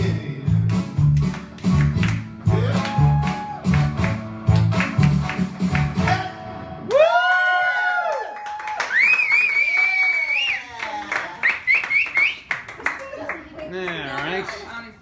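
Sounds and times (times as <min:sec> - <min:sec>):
karaoke backing track: 0:00.0 - 0:06.9
people clapping: 0:00.6 - 0:15.0
high whoops: 0:02.5 - 0:03.8, 0:06.8 - 0:12.4
whistling: 0:08.8 - 0:10.7, 0:11.4 - 0:12.6.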